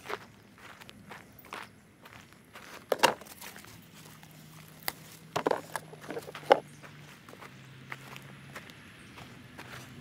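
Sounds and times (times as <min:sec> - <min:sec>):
footsteps on dry soil: 0:00.0 - 0:10.0
knocks and rustles in plastic tub: 0:02.9 - 0:03.4, 0:05.4 - 0:06.6.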